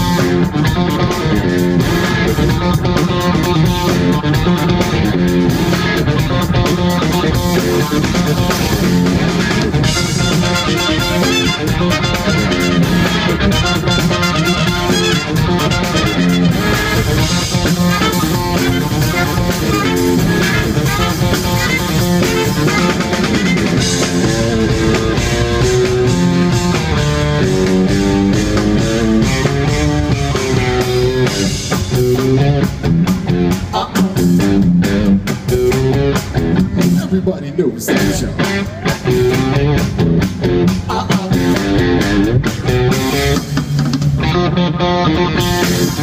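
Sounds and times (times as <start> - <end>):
live funk band playing: 0.0 - 46.0.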